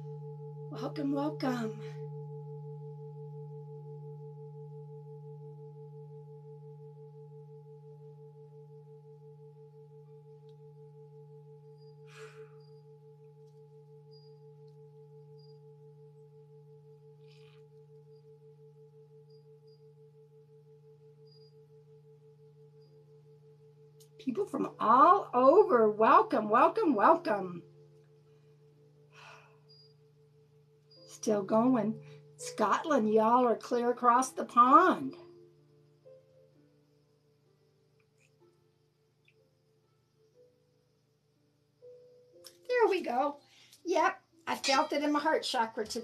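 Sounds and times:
singing bowl ringing: 0.0 - 35.6.

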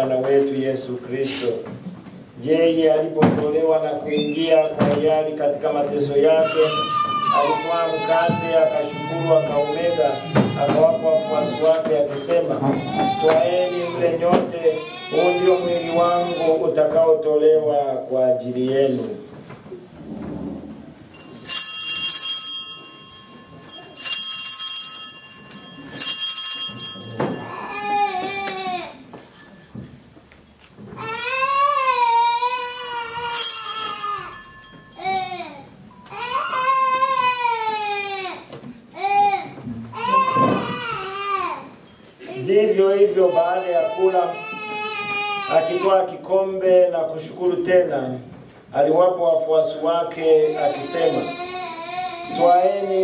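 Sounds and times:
young child crying: 6.3 - 11.9, 12.6 - 16.7, 27.4 - 29.2, 30.9 - 46.0, 50.3 - 53.0
altar bells ringing: 7.4 - 10.2, 21.1 - 28.2, 29.0 - 30.1, 32.5 - 37.3.

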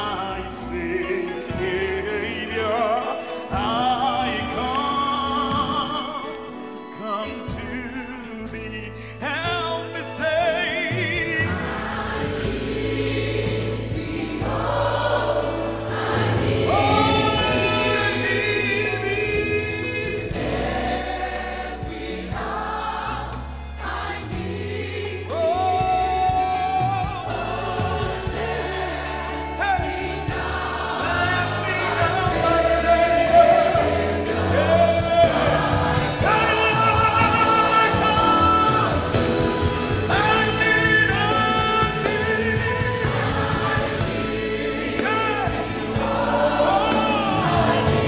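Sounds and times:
gospel choir singing: 0.0 - 48.0.

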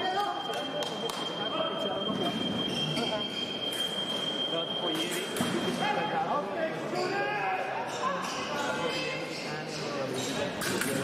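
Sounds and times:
voices in echoing hall: 0.0 - 11.0.

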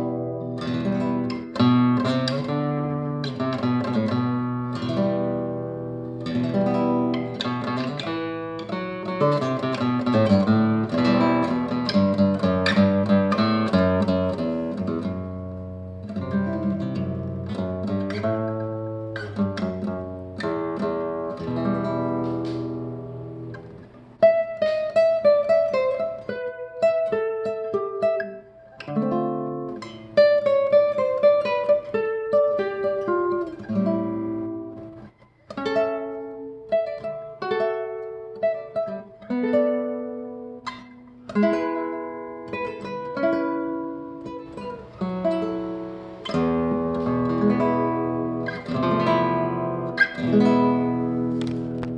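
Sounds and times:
nylon-string guitar playing: 0.0 - 51.9.

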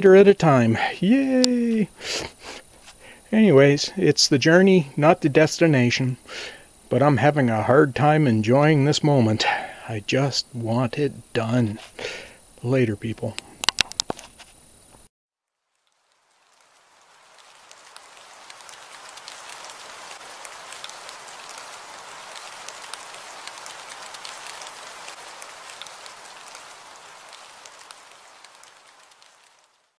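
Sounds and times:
steady rain: 0.0 - 15.0, 15.7 - 30.0.

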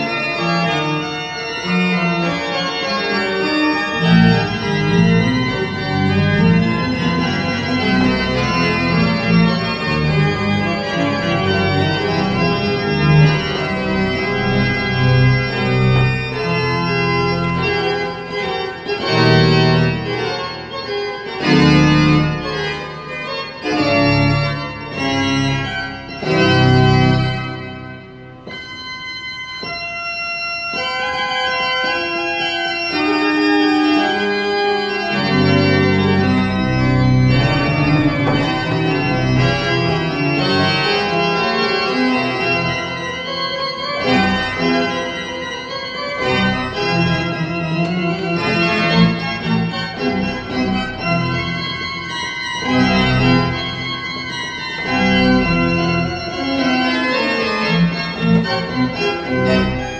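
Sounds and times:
pipe organ playing chords: 0.0 - 59.9.

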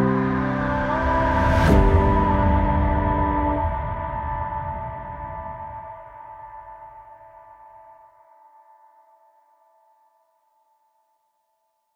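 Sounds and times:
synth bass: 0.0 - 5.9
sustained synth chord: 0.0 - 6.0.

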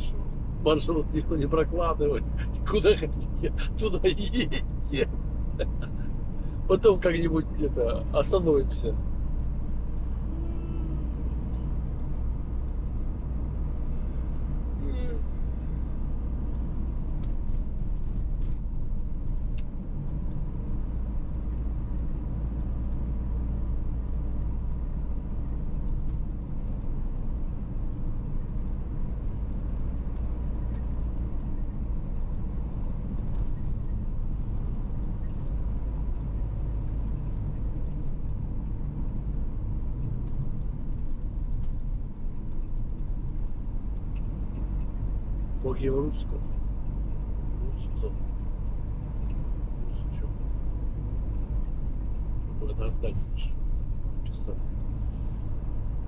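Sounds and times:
car engine and tyre noise: 0.0 - 56.0.

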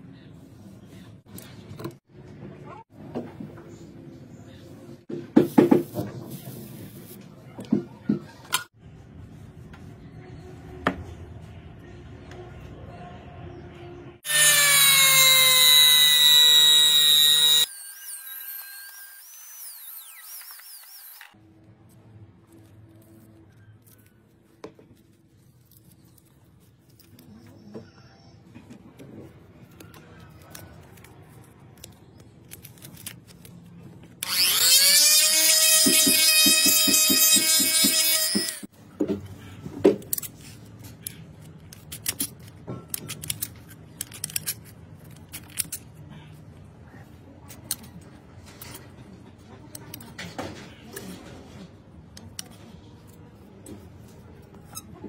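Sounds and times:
rotary tool cutting metal: 14.3 - 21.4, 34.2 - 38.7.

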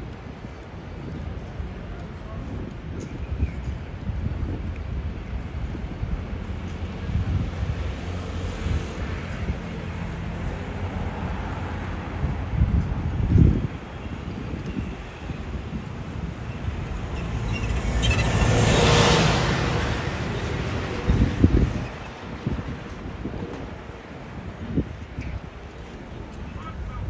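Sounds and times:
street traffic: 0.0 - 27.0
wind buffeting microphone: 0.0 - 27.0
bus passing: 5.7 - 27.0.

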